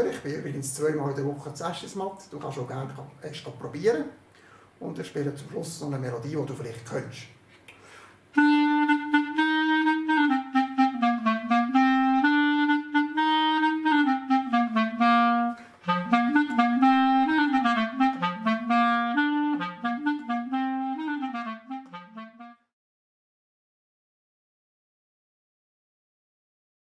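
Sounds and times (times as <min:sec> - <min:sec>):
solo clarinet melody: 0:08.3 - 0:22.8.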